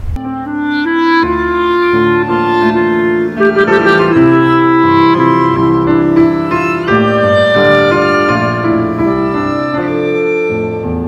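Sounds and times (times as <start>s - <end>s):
clarinet melody: 0.2s - 11.0s
piano accompaniment: 0.2s - 11.0s.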